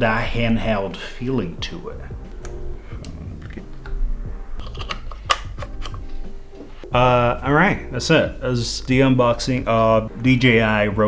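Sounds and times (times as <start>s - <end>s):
plastic and metal parts clicking: 4.6s - 6.0s.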